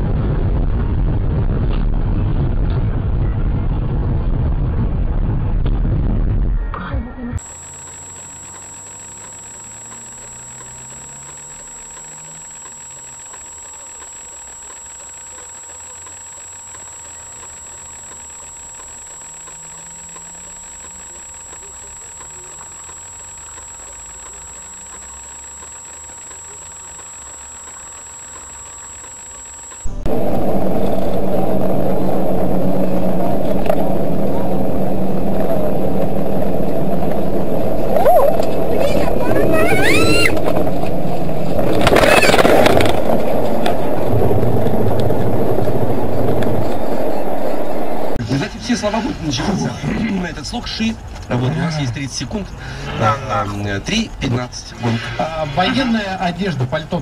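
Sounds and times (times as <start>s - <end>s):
car engine: 7.4s - 48.2s
high electronic whine: 7.4s - 49.4s
road noise: 29.8s - 48.2s.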